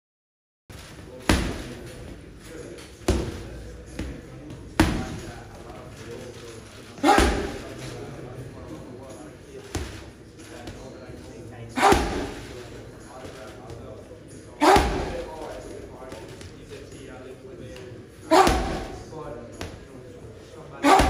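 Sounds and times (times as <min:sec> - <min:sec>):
punches thudding on heavy bag: 0:01.3 - 0:01.8, 0:07.0 - 0:07.7, 0:11.8 - 0:12.5, 0:14.6 - 0:15.4, 0:18.3 - 0:19.1.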